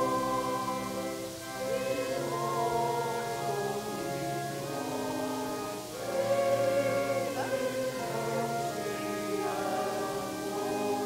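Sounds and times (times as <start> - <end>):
voices singing a hymn: 0.0 - 11.0.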